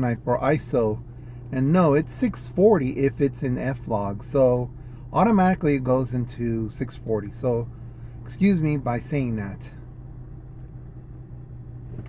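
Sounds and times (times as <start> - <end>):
car cabin hum and rumble: 0.0 - 12.0.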